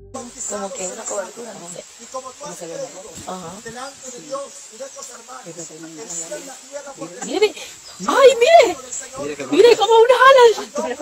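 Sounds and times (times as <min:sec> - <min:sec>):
background hiss: 0:00.0 - 0:11.0
people talking over each other: 0:00.0 - 0:11.0.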